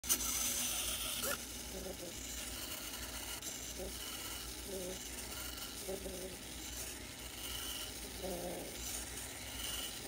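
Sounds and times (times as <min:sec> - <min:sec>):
servo motor whines: 0:00.1 - 0:10.0.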